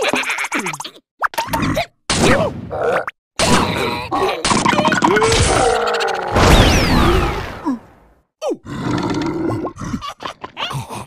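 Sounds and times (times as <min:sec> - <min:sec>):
cartoon vocal grunts and exclamations: 0:03.4 - 0:06.4.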